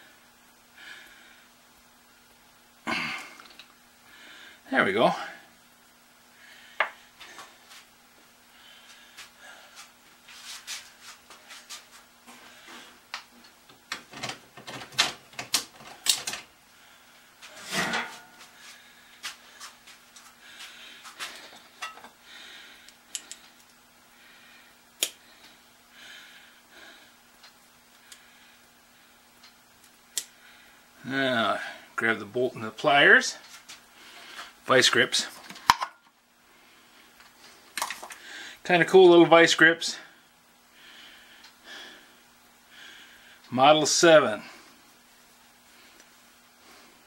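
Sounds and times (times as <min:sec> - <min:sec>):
faint steady hum: 0:00.0 - 0:47.0.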